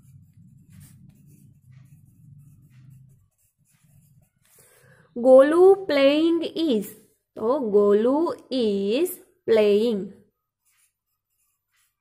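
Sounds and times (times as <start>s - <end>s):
pen scratching on paper: 0.0s - 7.5s, 9.9s - 12.0s.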